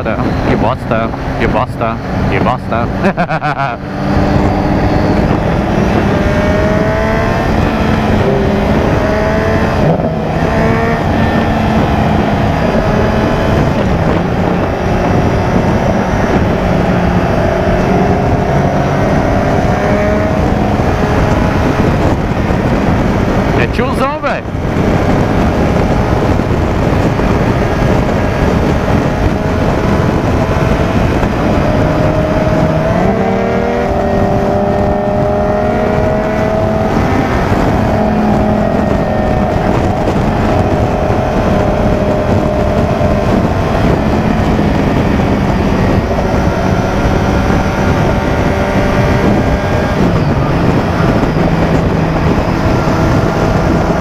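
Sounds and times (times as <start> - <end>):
motorcycle engine: 0.0 - 54.0
wind rush on microphone: 0.0 - 54.0.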